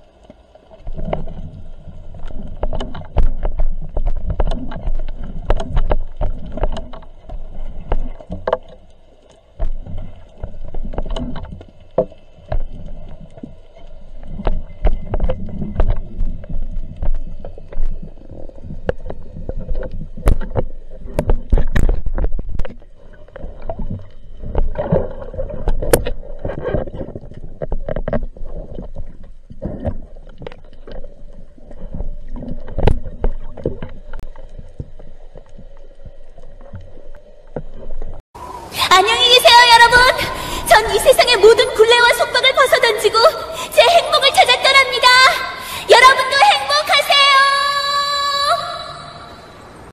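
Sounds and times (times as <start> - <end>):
low rumble of water movement: 0.0 - 49.9
underwater knocks and clicks: 0.2 - 38.2.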